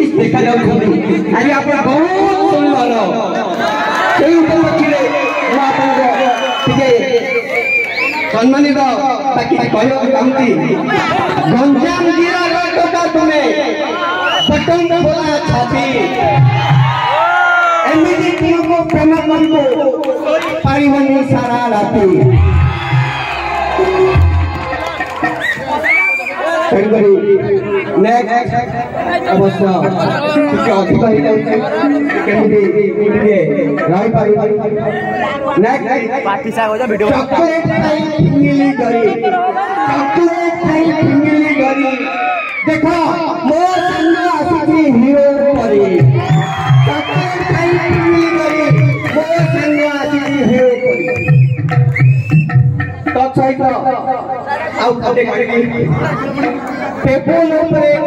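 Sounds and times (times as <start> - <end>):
men talking into a microphone: 0.0 - 22.9, 25.6 - 51.5, 52.9 - 58.0
background chatter: 24.9 - 41.4, 52.8 - 57.8.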